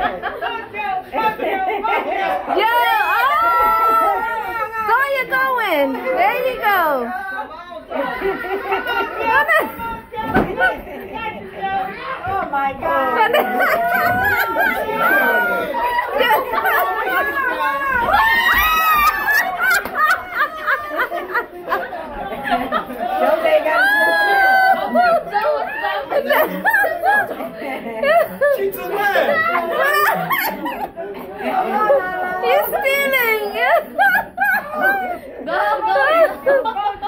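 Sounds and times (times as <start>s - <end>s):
people chattering: 0.0s - 37.0s
people talking and laughing: 0.0s - 37.0s.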